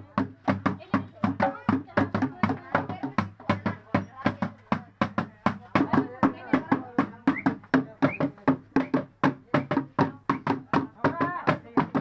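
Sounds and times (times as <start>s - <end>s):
hand-played barrel drums: 0.0s - 12.0s.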